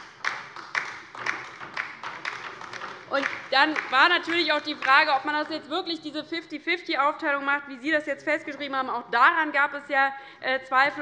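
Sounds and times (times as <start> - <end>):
light applause: 0.0 - 5.6.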